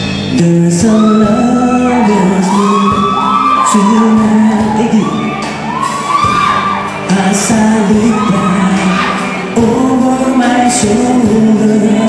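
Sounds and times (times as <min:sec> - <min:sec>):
drums with cymbal splashes: 0:00.0 - 0:01.0
electric bass: 0:00.0 - 0:12.0.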